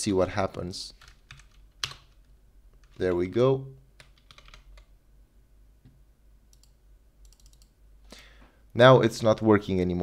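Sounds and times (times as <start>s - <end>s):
computer keyboard keystrokes: 1.0s - 2.2s, 4.0s - 4.9s, 6.5s - 7.7s.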